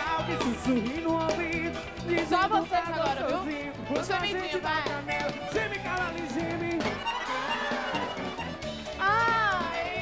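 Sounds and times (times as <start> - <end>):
live band melody over bass: 0.0 - 10.0.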